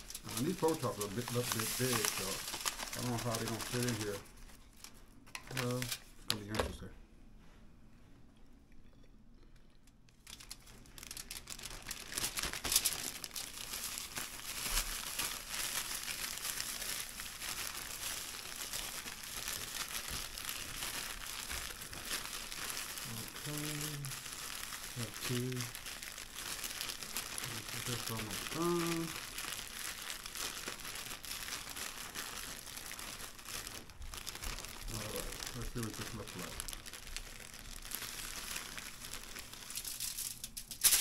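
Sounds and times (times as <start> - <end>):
plastic bag crinkling: 0.0 - 6.9, 10.1 - 41.0.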